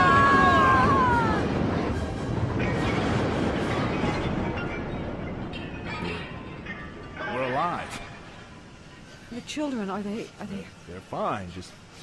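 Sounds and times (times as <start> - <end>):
loud crash and rumble: 0.0 - 7.0.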